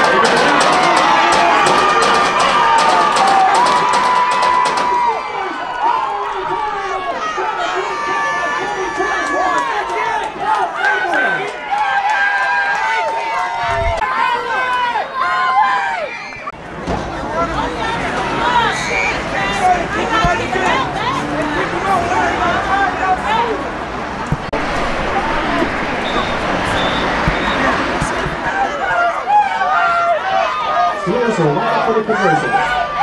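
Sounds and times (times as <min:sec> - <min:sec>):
rapid clapping: 0:00.0 - 0:05.2
crowd cheering and shouting: 0:00.0 - 0:33.0.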